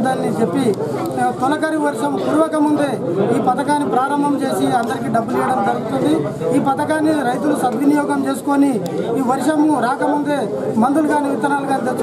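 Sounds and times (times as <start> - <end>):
man talking: 0.0 - 12.0.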